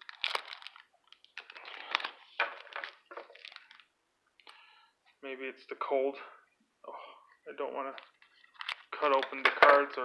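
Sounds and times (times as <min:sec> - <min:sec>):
foil wrapper crinkling: 0:00.0 - 0:03.9, 0:08.0 - 0:09.4.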